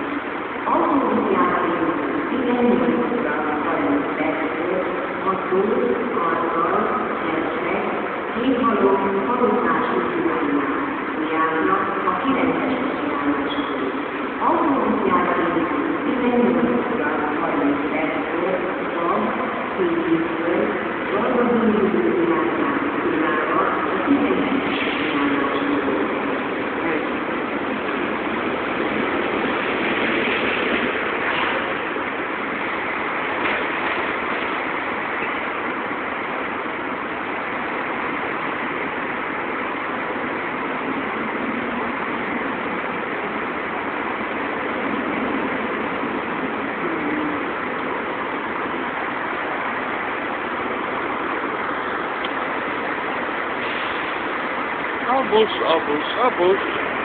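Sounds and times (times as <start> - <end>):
traffic road noise: 23.1 - 57.0.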